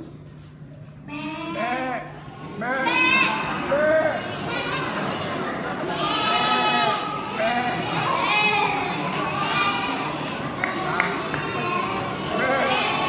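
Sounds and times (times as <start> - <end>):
children bleating like sheep: 1.1 - 5.1, 5.8 - 10.1, 11.6 - 13.0.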